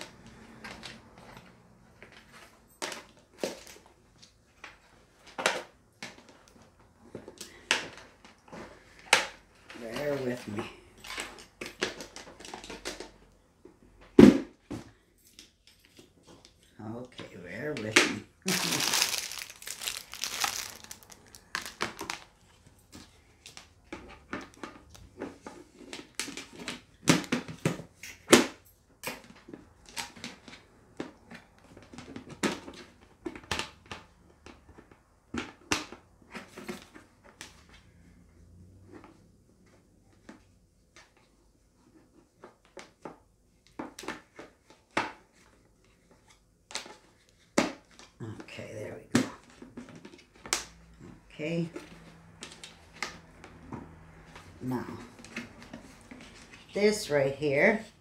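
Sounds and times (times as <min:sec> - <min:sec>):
plastic parts knocking and clattering: 0:00.0 - 0:37.8, 0:38.9 - 0:48.2, 0:49.0 - 0:56.6
plastic packaging crinkling and tearing: 0:18.4 - 0:22.7.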